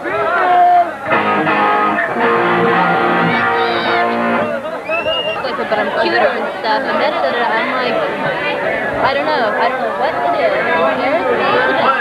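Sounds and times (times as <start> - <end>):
crowd talking and shouting: 0.0 - 12.0.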